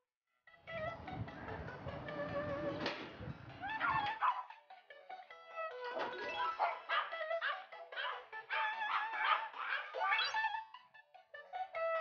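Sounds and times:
background music: 0.5s - 12.0s
small dogs whining and yipping: 3.6s - 4.4s, 6.0s - 10.7s.

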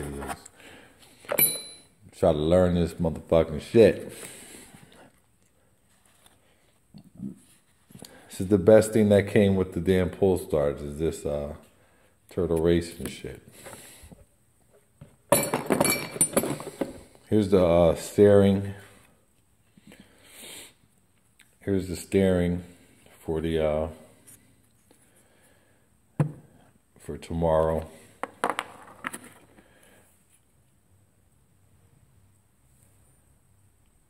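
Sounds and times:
small metal parts clinking: 1.3s - 1.9s, 15.3s - 16.9s.

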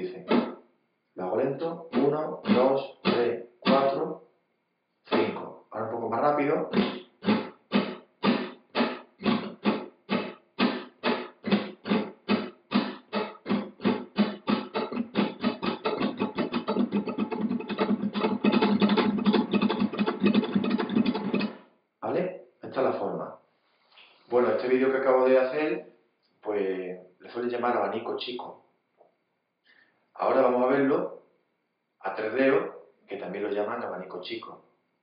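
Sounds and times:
flamenco guitar strumming: 0.0s - 0.6s, 1.8s - 4.0s, 5.1s - 5.4s, 6.7s - 21.6s.

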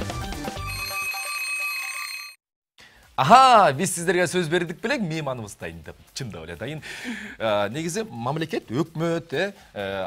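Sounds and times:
bright bell-like ringing chord: 0.7s - 2.3s.

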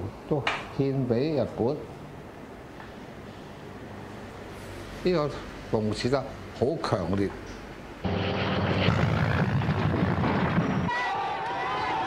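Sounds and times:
propeller aircraft engine running: 8.0s - 10.6s.

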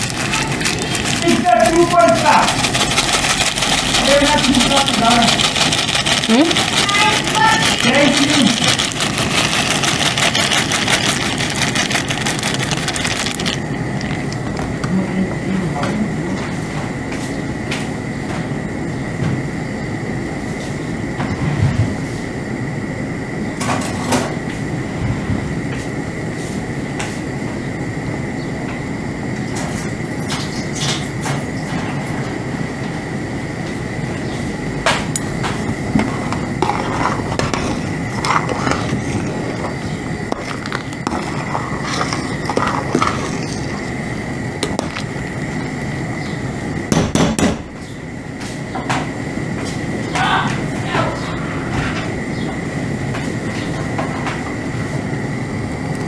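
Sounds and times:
dry pasta pouring into pot: 0.0s - 14.4s, 36.6s - 44.0s
water boiling in pot: 0.0s - 15.0s, 34.9s - 46.9s.

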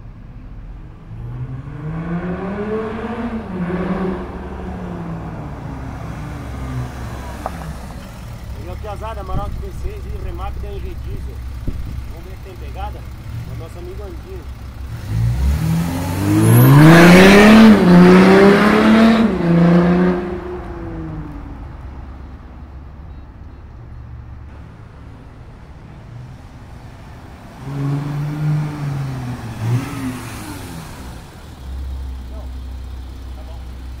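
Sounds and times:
pickup truck engine accelerating: 1.2s - 21.8s, 24.5s - 34.0s
low exhaust rumble: 4.2s - 15.4s.

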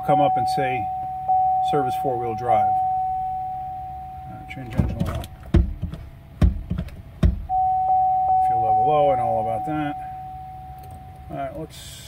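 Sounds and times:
electronic warning tone: 0.0s - 5.0s, 7.5s - 11.5s.

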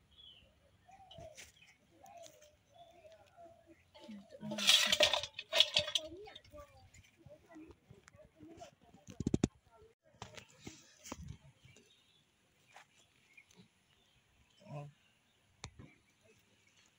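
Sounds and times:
clinking against metal bowl: 4.0s - 6.5s.

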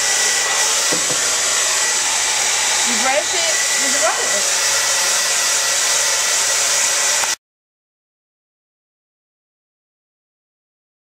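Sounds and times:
hair dryer running: 0.0s - 7.4s.

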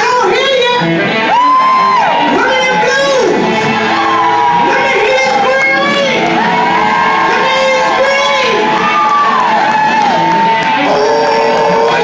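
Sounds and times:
blues band playing: 0.0s - 12.0s.

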